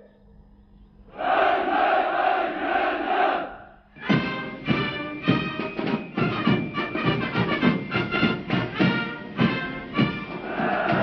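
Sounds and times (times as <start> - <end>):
crowd shouting: 1.2 - 3.6, 10.4 - 11.0.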